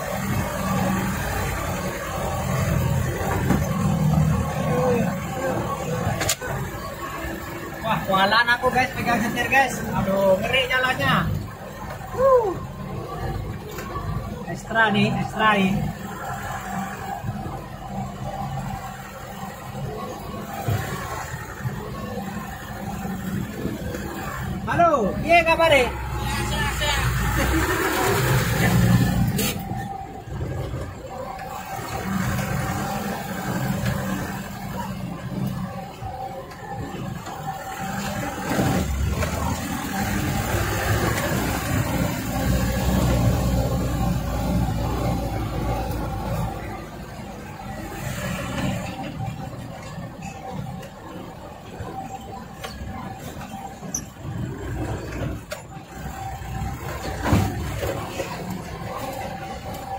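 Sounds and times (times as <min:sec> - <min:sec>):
diesel truck engine driving: 0:00.0 - 0:59.9.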